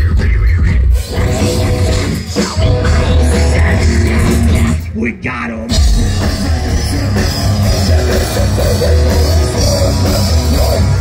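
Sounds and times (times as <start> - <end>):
live rock band playing: 0.0 - 5.0, 5.6 - 11.0.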